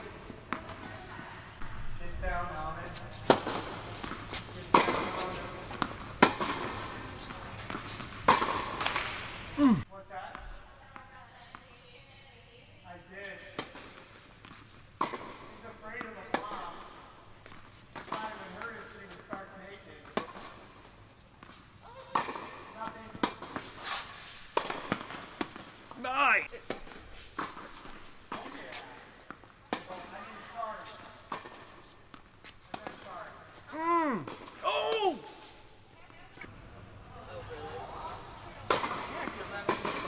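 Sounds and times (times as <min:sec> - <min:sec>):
tennis ball bouncing on court: 0:03.2 - 0:09.2, 0:13.6 - 0:16.7, 0:21.4 - 0:23.7, 0:24.6 - 0:25.8, 0:31.2 - 0:33.2, 0:38.7 - 0:40.0
tennis ball struck by rackets: 0:03.2 - 0:09.4, 0:15.0 - 0:16.7, 0:22.1 - 0:23.7, 0:24.6 - 0:25.8, 0:38.7 - 0:40.0.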